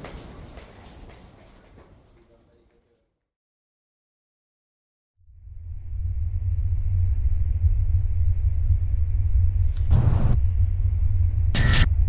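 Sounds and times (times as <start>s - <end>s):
deep bass drone: 5.2s - 12.0s.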